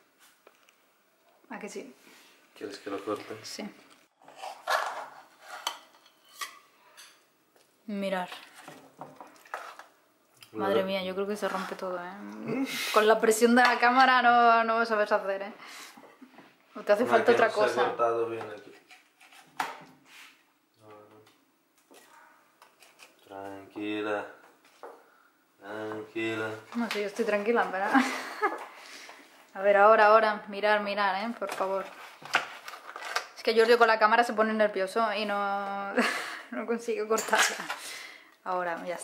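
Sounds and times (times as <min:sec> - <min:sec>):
murmured voice: 0:12.2 - 0:12.8.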